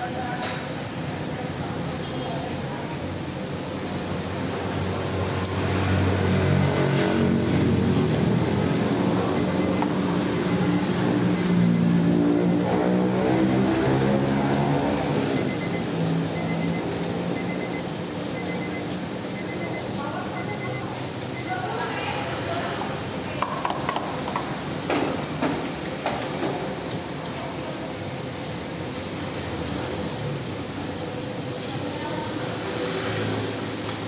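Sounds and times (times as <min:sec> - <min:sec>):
vehicle engine passing by: 0:04.6 - 0:09.4.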